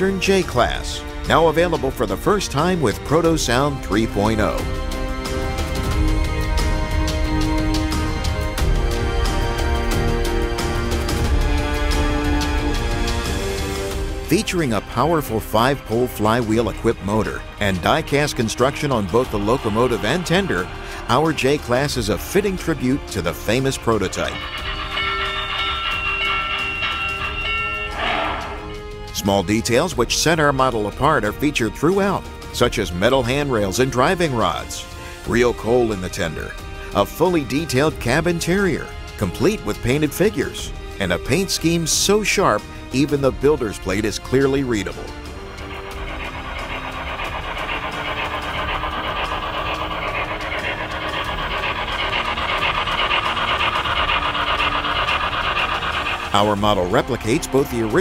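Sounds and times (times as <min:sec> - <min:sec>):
background music: 0:00.0 - 0:58.0
model steam locomotive whistle: 0:10.4 - 0:30.6, 0:32.8 - 0:58.0
steam hiss: 0:17.2 - 0:28.8, 0:44.4 - 0:58.0.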